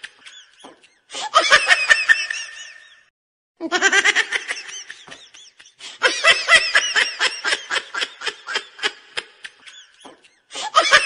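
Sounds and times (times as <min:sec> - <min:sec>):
laughter sound effect: 0:00.0 - 0:11.0.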